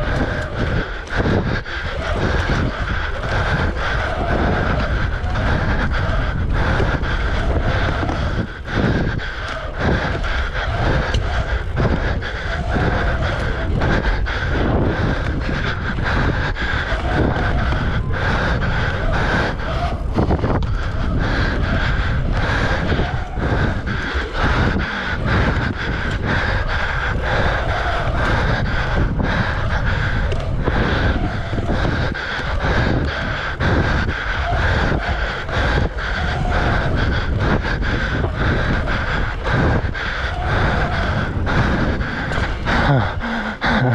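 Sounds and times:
bike tyres rumbling: 0:00.0 - 0:43.9
wind buffeting microphone: 0:00.0 - 0:43.9.

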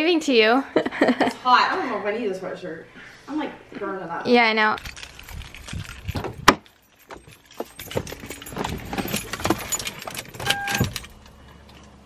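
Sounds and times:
keys jangling: 0:04.6 - 0:12.0
car door latch clicking open: 0:09.3 - 0:11.2
short electronic beep: 0:10.5 - 0:10.8.

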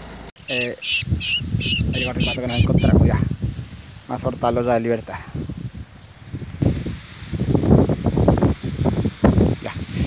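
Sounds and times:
wind buffeting microphone: 0:00.5 - 0:10.0.

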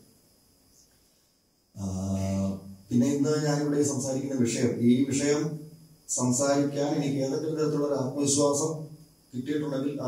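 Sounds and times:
man speaking: 0:01.8 - 0:05.5, 0:06.1 - 0:08.8, 0:09.4 - 0:10.0.

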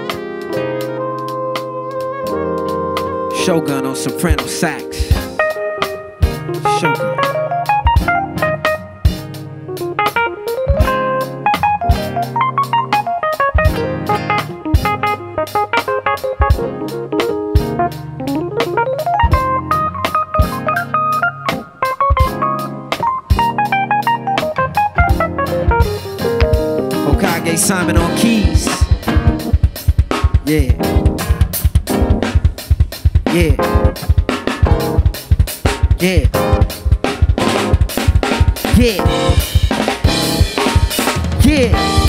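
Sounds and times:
soprano saxophone solo: 0:00.0 - 0:04.2
bass line: 0:00.0 - 0:42.0
drum beat: 0:03.7 - 0:07.3, 0:07.9 - 0:08.5, 0:14.7 - 0:17.8, 0:22.1 - 0:22.4, 0:25.1 - 0:42.0.

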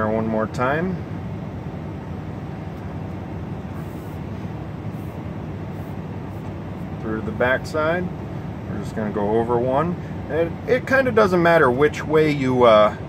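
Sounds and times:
vehicle interior hum: 0:00.0 - 0:13.0.

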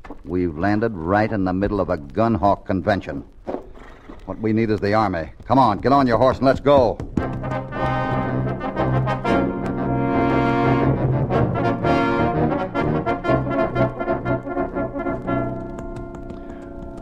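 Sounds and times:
brass orchestral music: 0:07.2 - 0:16.3.

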